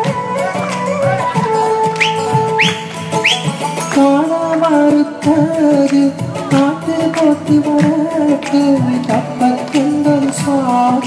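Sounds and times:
backing music with steady beat: 0:00.0 - 0:11.0
whistle-like swoops: 0:01.8 - 0:03.6.

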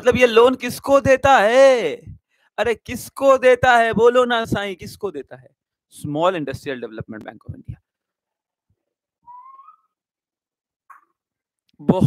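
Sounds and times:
short rising whistle: 0:09.3 - 0:10.0.

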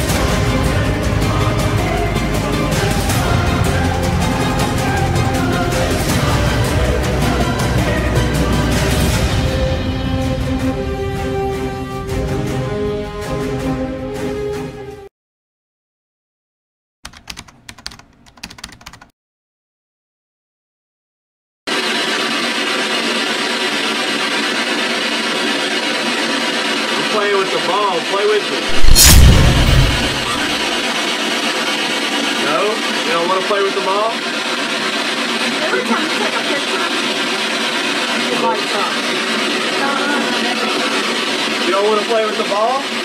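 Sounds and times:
low rumble: 0:28.7 - 0:30.8
sharp knock: 0:28.7 - 0:30.8.

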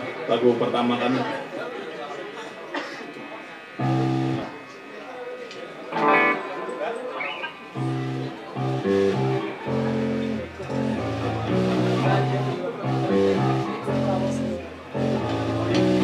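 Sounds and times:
electric guitar chords and notes: 0:03.3 - 0:04.8, 0:05.8 - 0:16.0
bass guitar: 0:03.8 - 0:04.5, 0:07.7 - 0:16.0.

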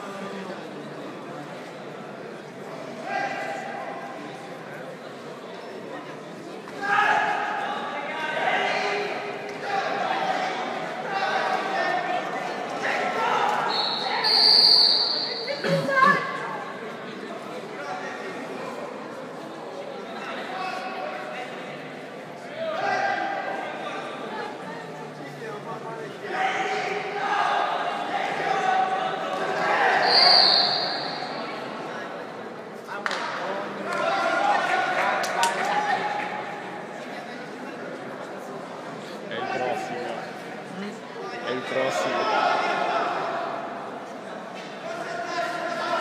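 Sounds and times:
hall chatter: 0:00.0 - 0:46.0.

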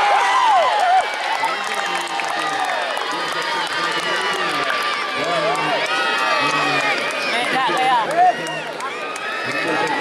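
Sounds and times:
crowd talking and calling out: 0:00.0 - 0:10.0.

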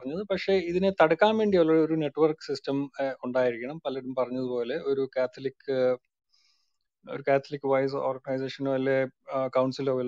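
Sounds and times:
man talking over voice chat: 0:00.0 - 0:06.0, 0:07.1 - 0:10.0.

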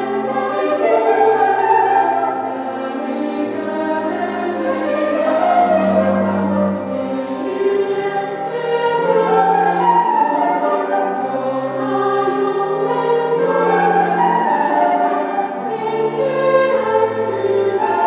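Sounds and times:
youth choir singing: 0:00.0 - 0:18.0.

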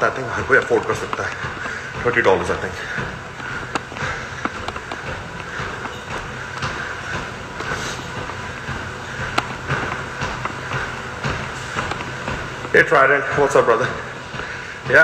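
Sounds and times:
indoor hum and hiss: 0:00.0 - 0:15.0.

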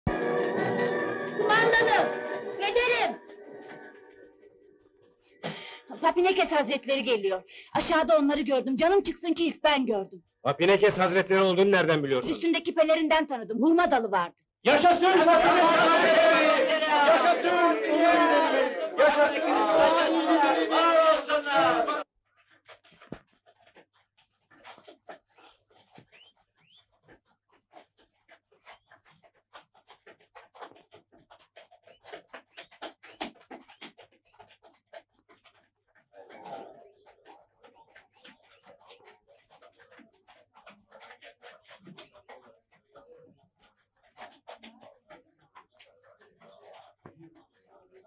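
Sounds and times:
horse hooves clopping: 0:00.1 - 0:10.1, 0:10.7 - 0:48.0
breathy sound: 0:05.2 - 0:06.0
crowd shouting: 0:14.7 - 0:22.0.

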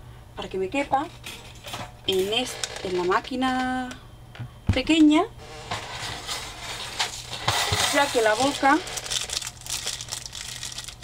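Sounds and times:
plastic sleeve crinkling: 0:05.5 - 0:11.0.

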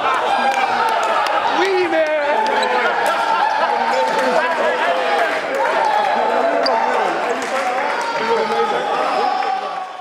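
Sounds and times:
men talking and laughing: 0:00.0 - 0:09.8.

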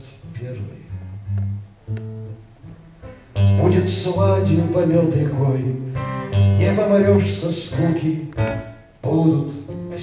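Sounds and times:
plucked guitar notes: 0:00.2 - 0:09.0, 0:09.6 - 0:10.0
loud guitar strumming: 0:00.9 - 0:10.0.

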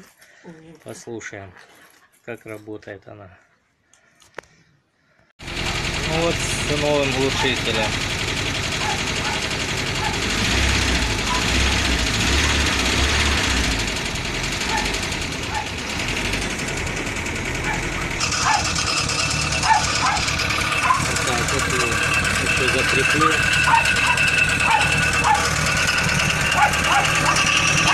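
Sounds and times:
van engine running: 0:05.4 - 0:27.9.

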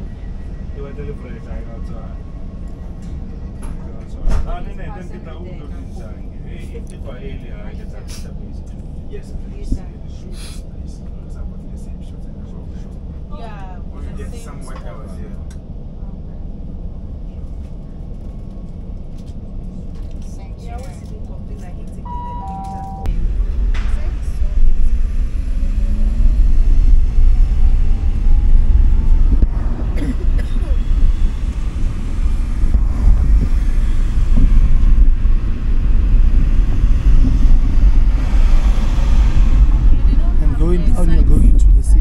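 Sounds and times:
car engine and road noise: 0:00.0 - 0:42.0
steady low hum: 0:00.0 - 0:42.0
two-note falling chime: 0:22.1 - 0:23.1.

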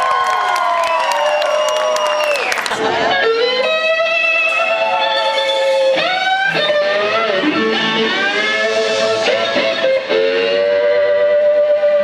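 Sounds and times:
live blues music: 0:02.6 - 0:12.0.

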